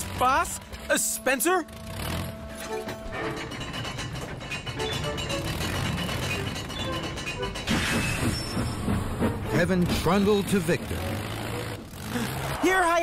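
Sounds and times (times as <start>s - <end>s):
steam locomotive running: 0.0s - 13.0s
cartoon background music: 4.6s - 11.0s.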